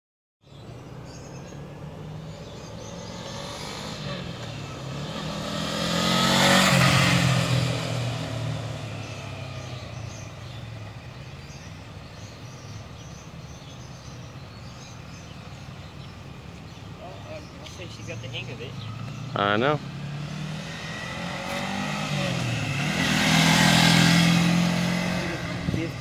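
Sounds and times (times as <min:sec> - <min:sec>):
motorcycle riding past: 0:01.1 - 0:14.0, 0:18.1 - 0:26.0.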